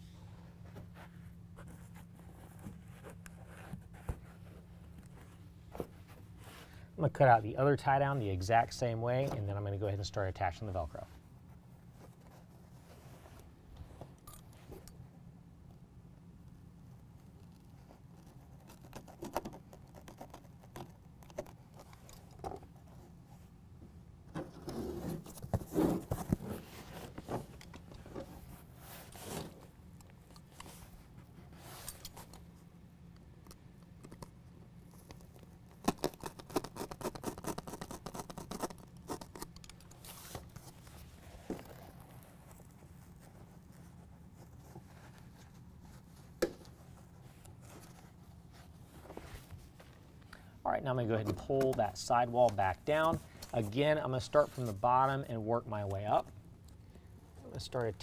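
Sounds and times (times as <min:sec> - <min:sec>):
carpet rustling and scraping: 0:00.0 - 0:09.9, 0:10.6 - 0:14.9, 0:16.4 - 0:58.0.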